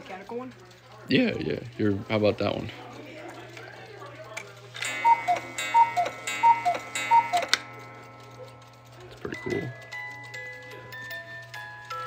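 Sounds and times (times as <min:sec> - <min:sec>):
cuckoo clock calls: 0:04.8 - 0:10.5
ringing tone: 0:04.9 - 0:08.5.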